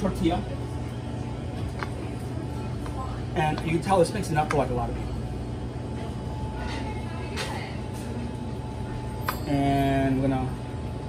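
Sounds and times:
kitchen machinery humming: 0:00.0 - 0:11.0.

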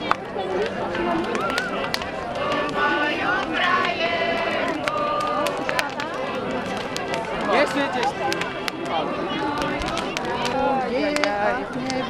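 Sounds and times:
bonfire crackling and popping: 0:00.0 - 0:12.0
group of people talking: 0:00.0 - 0:12.0.

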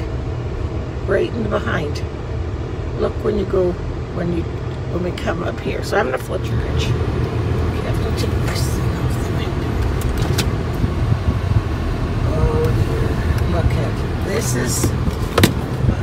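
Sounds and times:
car road and engine rumble: 0:00.0 - 0:16.0.

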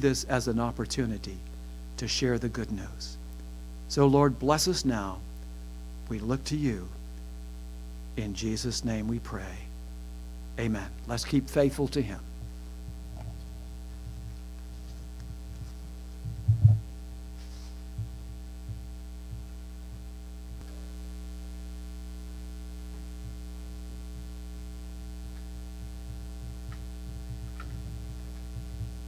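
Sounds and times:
electrical mains hum: 0:00.0 - 0:29.0
faint low thuds: 0:12.3 - 0:17.2, 0:17.8 - 0:20.8, 0:25.4 - 0:29.0
loud low thump: 0:16.2 - 0:16.9.

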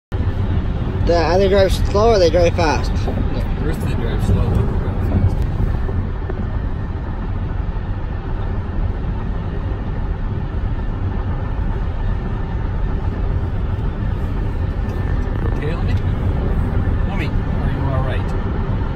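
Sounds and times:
car road noise rumble: 0:00.1 - 0:18.9.

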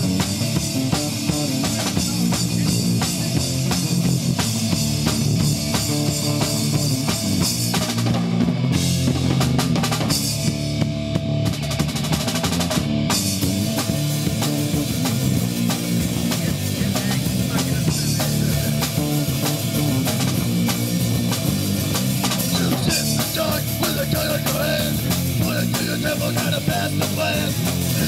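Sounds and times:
amplified electric guitar: 0:00.0 - 0:28.0
drum kit steady beat: 0:00.0 - 0:28.0.

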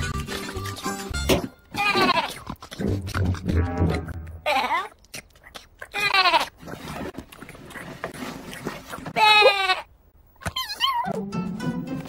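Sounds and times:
cartoon lamb bleats: 0:01.7 - 0:02.4, 0:04.4 - 0:04.9, 0:05.9 - 0:06.5, 0:09.2 - 0:09.9.

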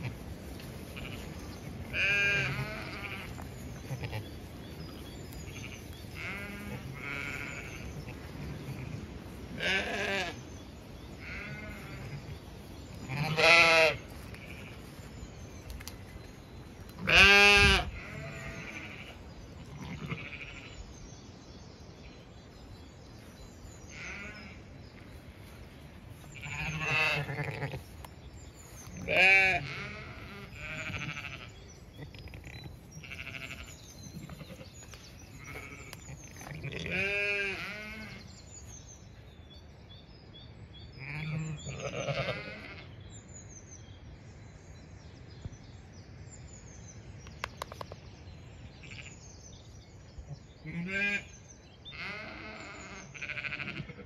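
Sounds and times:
birds chirping faintly: 0:00.0 - 0:53.8
sheep bleating: 0:01.9 - 0:04.3, 0:05.5 - 0:10.4, 0:11.2 - 0:12.4, 0:13.1 - 0:14.8, 0:17.0 - 0:20.8, 0:23.9 - 0:24.6, 0:26.3 - 0:27.9, 0:29.0 - 0:34.7, 0:35.4 - 0:38.2, 0:41.0 - 0:42.9, 0:48.8 - 0:49.2, 0:50.6 - 0:51.3, 0:51.9 - 0:54.0.

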